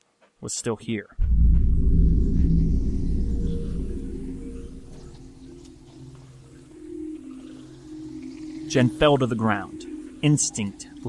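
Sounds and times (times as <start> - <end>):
cinematic low boom hit: 1.2 - 6.2
low rumbling drone: 1.2 - 8.3.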